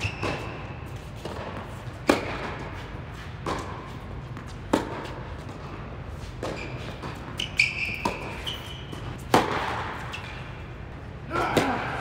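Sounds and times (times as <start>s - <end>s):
tennis ball hits echoing: 9.2s - 10.0s.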